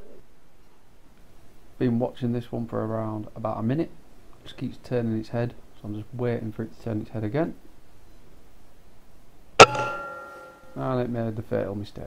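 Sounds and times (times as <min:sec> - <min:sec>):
air rifle shot: 0:09.6 - 0:10.6
metallic ringing: 0:09.6 - 0:10.9.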